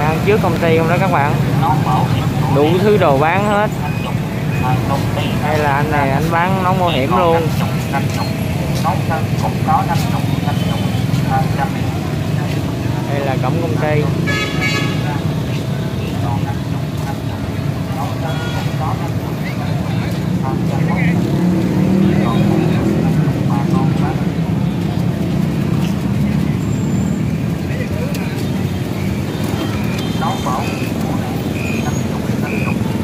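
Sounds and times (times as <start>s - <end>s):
people talking: 0.0s - 14.2s, 14.8s - 26.6s, 27.6s - 33.0s
motorbike and scooter engines: 0.0s - 33.0s
horn toot: 14.1s - 15.4s.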